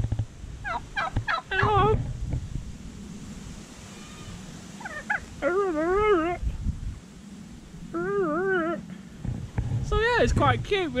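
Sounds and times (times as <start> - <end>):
turkey wavering whining call: 0.6 - 2.0, 3.8 - 6.4, 7.9 - 9.0.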